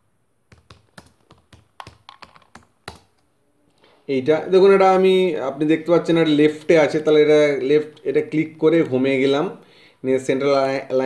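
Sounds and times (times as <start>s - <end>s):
typing on computer keyboard: 0.5s - 3.2s.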